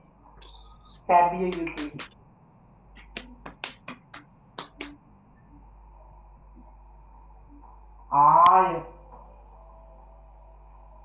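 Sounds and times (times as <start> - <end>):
low steady hum: 0.0 - 11.0
marker tapping on whiteboard: 1.5 - 2.1, 3.0 - 4.9.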